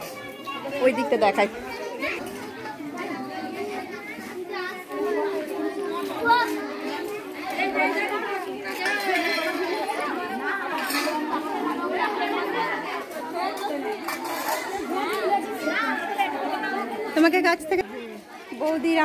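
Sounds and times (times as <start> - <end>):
women and children chattering: 0.0 - 19.0.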